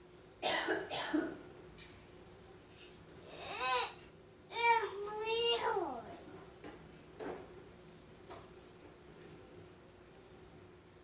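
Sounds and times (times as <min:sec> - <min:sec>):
person coughing: 0:00.4 - 0:01.4.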